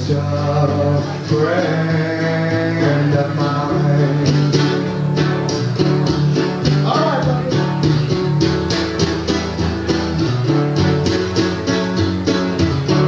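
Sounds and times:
man singing: 0.0s - 5.0s, 6.7s - 8.2s
strummed guitar: 0.0s - 13.0s.

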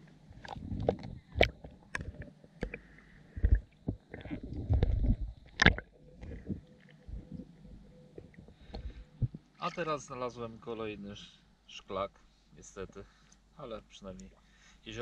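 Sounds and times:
underwater knocks and clicks: 0.4s - 9.5s.

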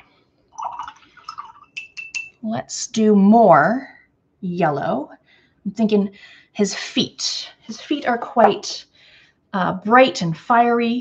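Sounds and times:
brush tapping cup rim: 0.7s - 2.4s.

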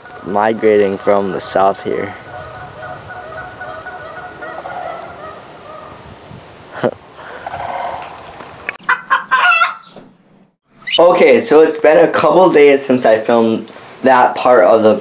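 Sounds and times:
geese honking: 0.0s - 6.0s, 8.8s - 9.9s.

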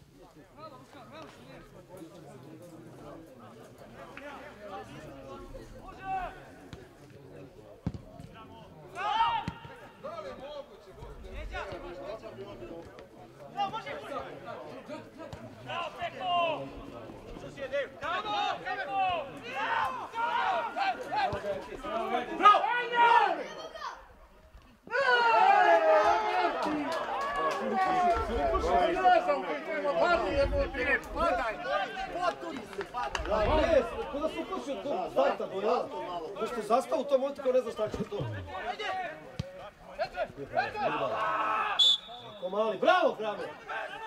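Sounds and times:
voices calling and talking: 0.0s - 44.0s.

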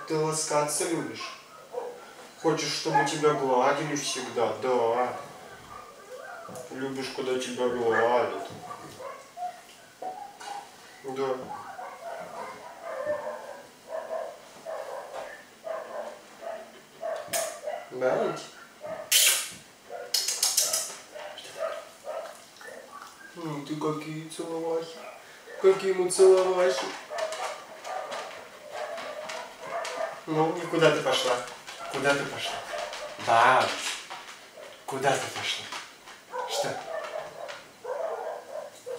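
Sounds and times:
soft dog sounds: 1.0s - 38.9s
dog whining yips: 5.7s - 6.7s
sharp noisy burst: 19.1s - 19.6s.

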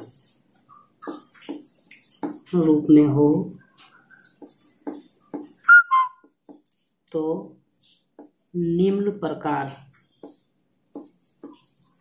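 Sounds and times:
marker squeaking on whiteboard: 0.0s - 2.7s, 3.6s - 6.7s, 9.8s - 12.0s
marker scratching on whiteboard: 0.0s - 3.0s, 3.6s - 9.1s, 9.7s - 12.0s.

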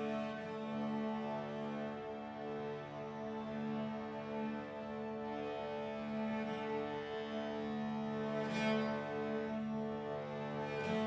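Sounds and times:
accordion: 0.0s - 11.0s
cello: 0.0s - 11.0s
harmonium: 0.0s - 11.0s.

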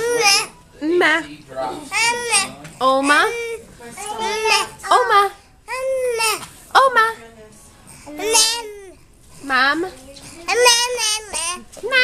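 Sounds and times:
toddler babbling: 0.0s - 0.6s, 1.9s - 6.4s, 8.1s - 9.0s, 10.3s - 12.0s.

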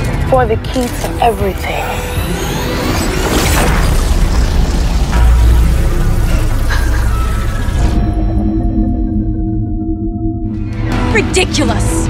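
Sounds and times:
dramatic soundtrack music: 0.0s - 12.0s
deep low rumbling boom: 3.6s - 11.1s.

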